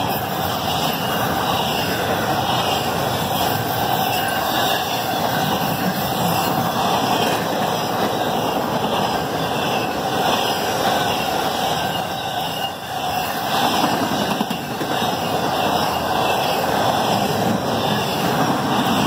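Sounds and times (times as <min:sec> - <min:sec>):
freight train wheels on rail: 0:00.0 - 0:19.0.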